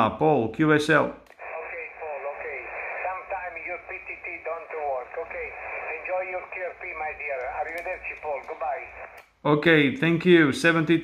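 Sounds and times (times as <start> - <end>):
radio hiss: 1.4 - 9.2
thin radio speech: 1.4 - 9.2.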